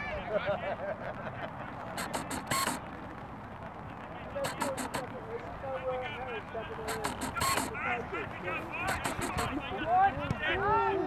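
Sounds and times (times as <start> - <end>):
outdoor background noise: 0.0 - 11.0
people talking: 3.9 - 11.0.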